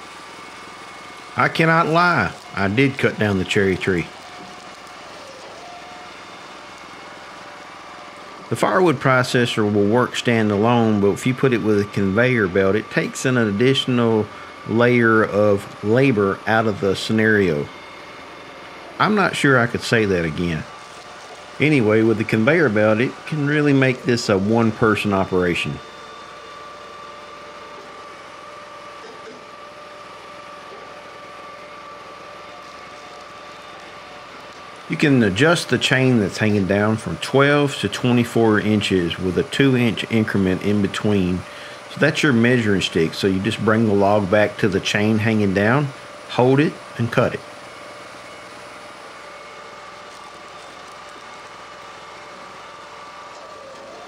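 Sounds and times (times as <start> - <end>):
log conveyor running: 0.0 - 54.0
small gasoline engines running: 0.0 - 54.0.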